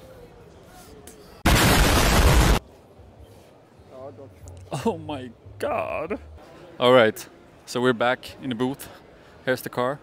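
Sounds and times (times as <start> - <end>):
loud burst of noise: 1.4 - 2.6.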